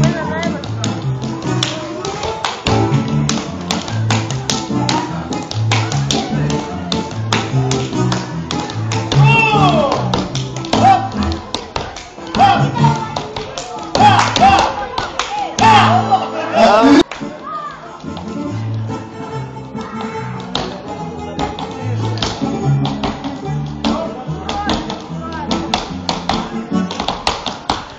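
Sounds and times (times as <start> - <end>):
tap shoes on wooden floor: 0.0 - 15.7, 19.8 - 27.9.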